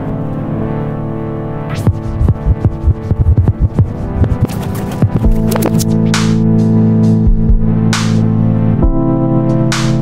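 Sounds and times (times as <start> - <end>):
held synth chords: 0.0 - 7.9
electronic drum hits: 1.8 - 5.8.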